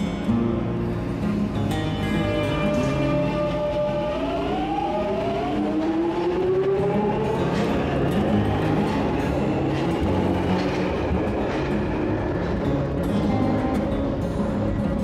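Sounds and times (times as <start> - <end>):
train running rumble: 2.1 - 15.0.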